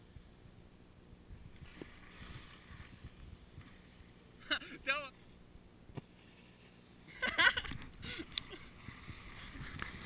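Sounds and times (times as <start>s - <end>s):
wind rumble on microphone: 1.2s - 4.0s, 7.5s - 10.0s
skis sliding over packed snow: 8.5s - 10.0s.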